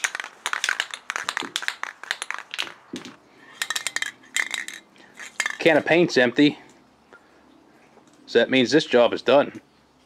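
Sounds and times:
spray can ball rattling: 0:00.0 - 0:05.9.

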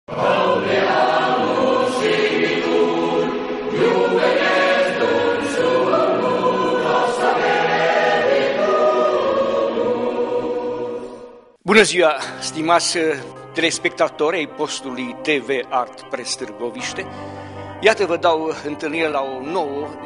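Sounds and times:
choir singing sustained chords: 0:00.1 - 0:11.6.

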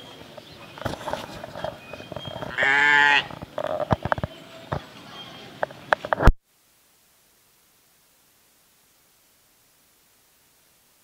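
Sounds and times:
sheep bleating: 0:02.5 - 0:03.4.

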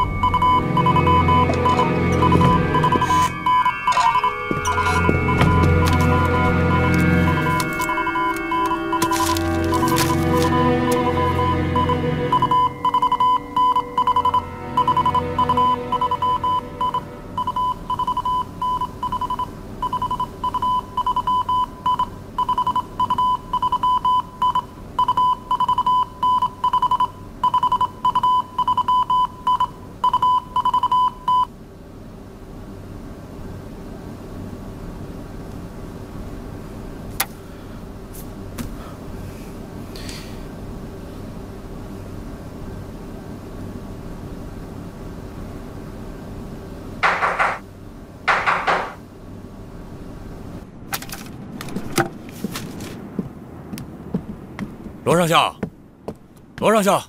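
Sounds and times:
morse code beeps: 0:00.0 - 0:31.5
low steady hum: 0:00.0 - 0:57.0.

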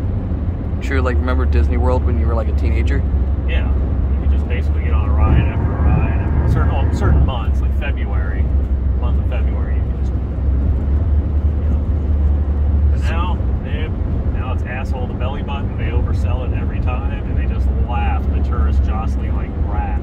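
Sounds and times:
road and tyre rumble: 0:00.0 - 0:20.0.

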